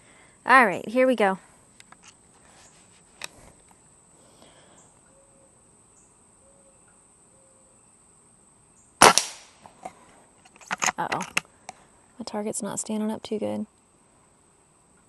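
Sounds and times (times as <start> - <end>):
air rifle shot: 9.0 - 9.6.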